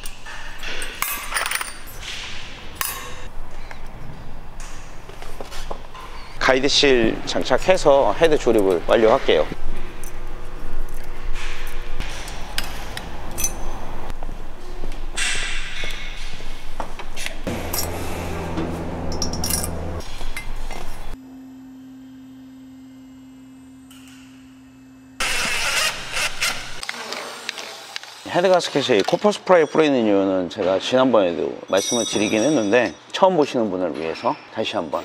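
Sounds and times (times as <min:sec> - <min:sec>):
metal parts and tools clinking: 0:00.0 - 0:03.2, 0:13.3 - 0:13.8, 0:17.6 - 0:18.0, 0:19.0 - 0:20.6, 0:31.7 - 0:33.2
steady hum: 0:17.4 - 0:25.2.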